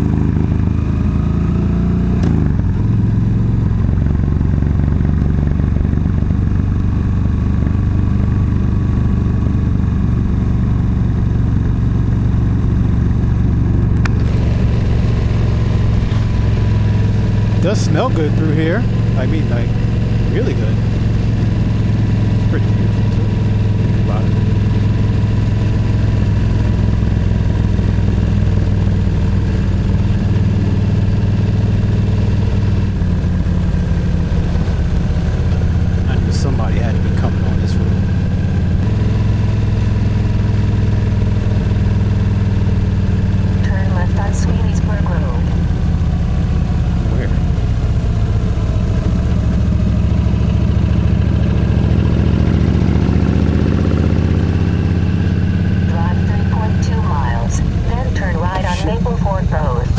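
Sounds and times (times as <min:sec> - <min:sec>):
motorcycle engine running: 0:00.0 - 0:59.9.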